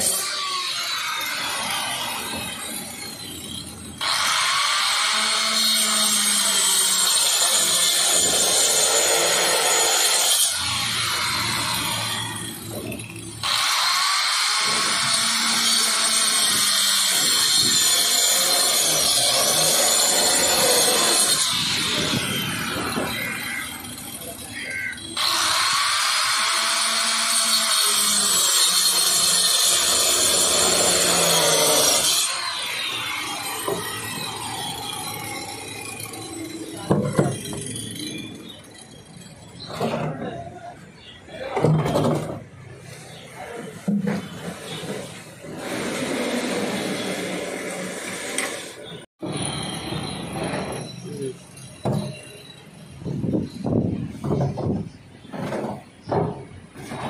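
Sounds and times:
circular saw cutting plastic: 0.0s - 41.1s.

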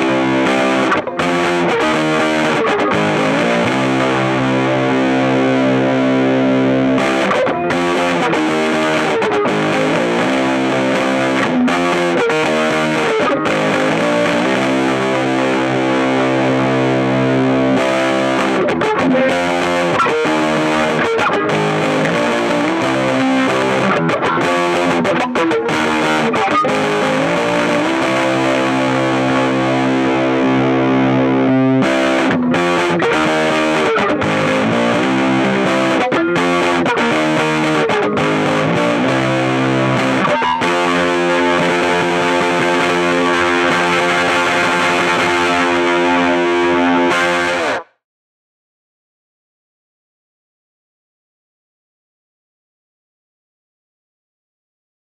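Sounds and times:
distorted electric guitar chords: 0.0s - 48.0s.

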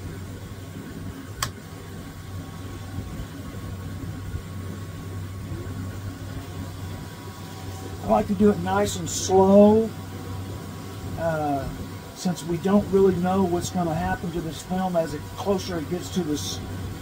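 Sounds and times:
low motor hum: 0.0s - 17.0s
sharp click: 1.4s - 1.6s.

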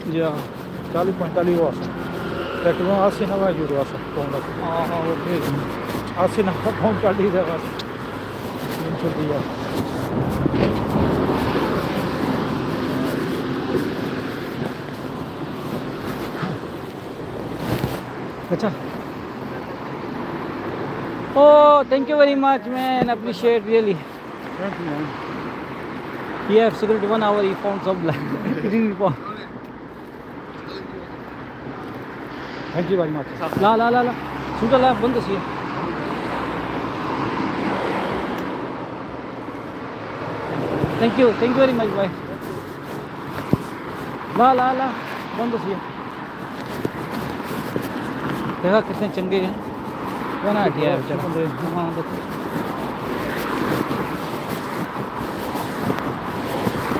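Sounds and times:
vehicle passing: 0.0s - 29.2s, 30.7s - 56.9s
road traffic: 0.0s - 56.9s
wind buffeting microphone: 3.1s - 21.4s, 45.8s - 56.9s.

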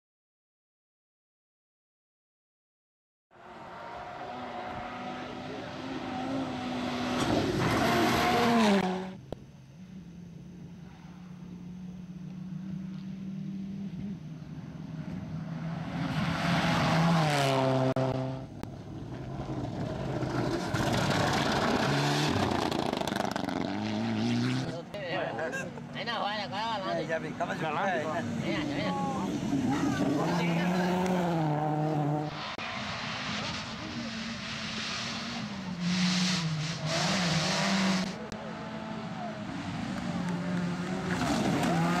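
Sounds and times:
rally cars passing at full throttle: 3.3s - 9.2s, 10.6s - 42.0s.

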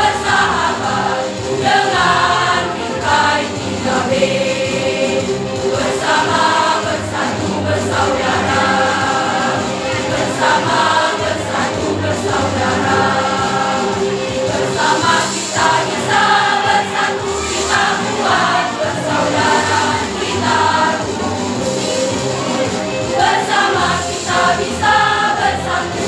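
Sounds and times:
children's choir singing a march: 0.0s - 26.0s.

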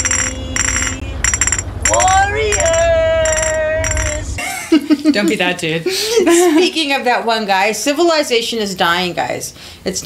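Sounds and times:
man sing-song taunting: 1.9s - 4.4s.

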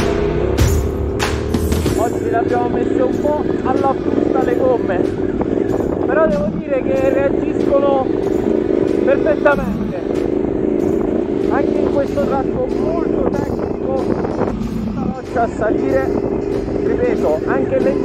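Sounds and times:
motorcycle engine running: 0.0s - 18.0s
rock music: 0.0s - 18.0s.

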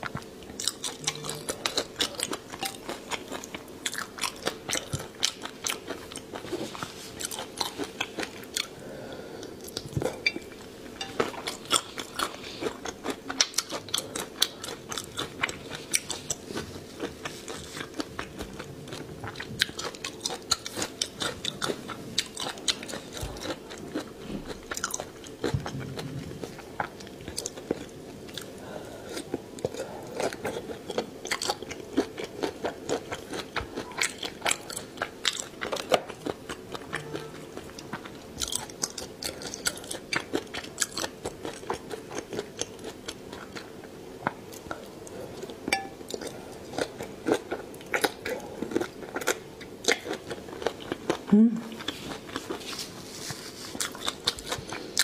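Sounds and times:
faint steady hum: 0.0s - 55.0s
person chewing food: 0.0s - 55.0s.

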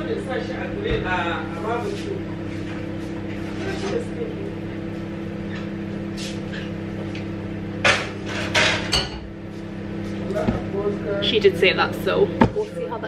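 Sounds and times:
cookware and utensils clattering: 7.8s - 9.2s.

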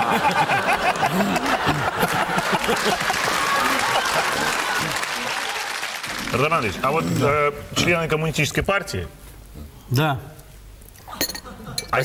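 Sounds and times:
audience laughter: 0.0s - 5.4s
audience applauding: 0.0s - 7.4s.

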